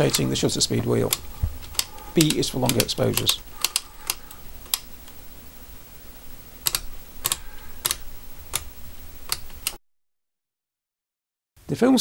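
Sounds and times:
camera dial detents clicking: 1.1 - 4.9, 6.6 - 8.7.

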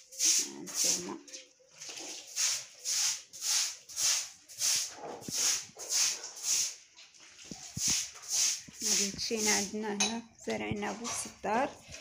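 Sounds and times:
brush sweeping wet concrete: 0.0 - 9.8.

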